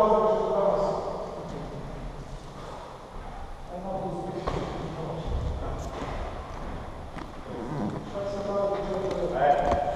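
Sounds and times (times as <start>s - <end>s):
man talking: 0.0s - 2.0s, 3.7s - 6.2s, 7.8s - 9.9s.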